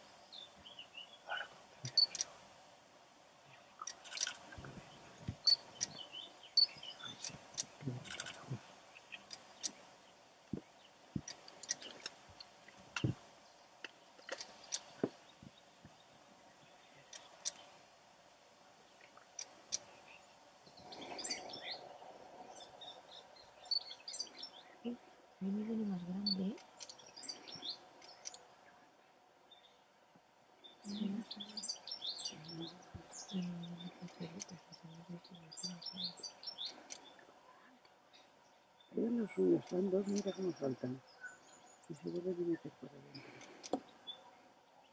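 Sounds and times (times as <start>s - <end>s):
small birds chirping: 0.0s - 2.4s, 3.4s - 17.9s, 18.7s - 44.9s
outdoor background hiss: 0.0s - 44.9s.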